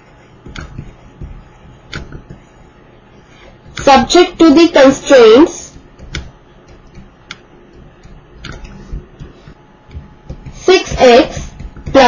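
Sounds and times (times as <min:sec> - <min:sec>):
stylus tapping on tablet: 0:00.4 - 0:02.5, 0:05.7 - 0:12.0.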